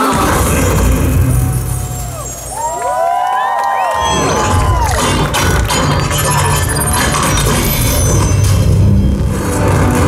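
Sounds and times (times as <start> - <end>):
soundtrack music: 0.0 - 10.0
deep low rumble: 0.1 - 3.1, 3.9 - 10.0
whistles rising and falling in pitch: 1.3 - 5.0.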